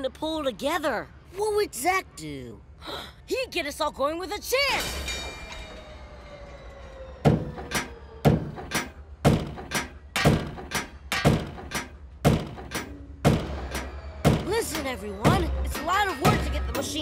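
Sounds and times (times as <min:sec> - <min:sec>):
heavy rhythmic thunks: 0:07.3 - 0:17.0.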